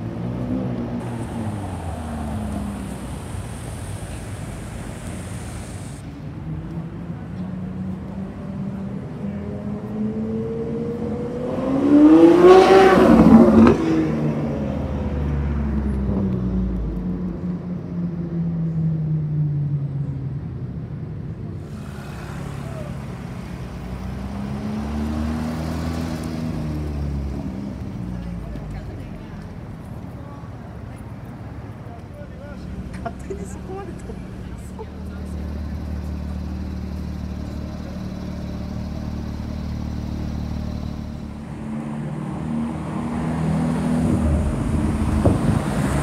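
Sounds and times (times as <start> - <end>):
street noise: 0.0 - 46.0
sports car engine revving: 21.6 - 28.0.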